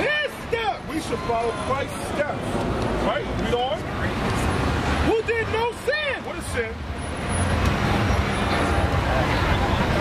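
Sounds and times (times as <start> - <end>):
road traffic rumble: 0.0 - 10.0
faint voices: 7.8 - 10.0.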